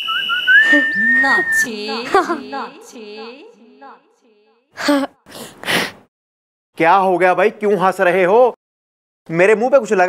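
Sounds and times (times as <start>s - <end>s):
high whistled note: 0.0s - 1.8s
person's voice: 0.7s - 4.0s.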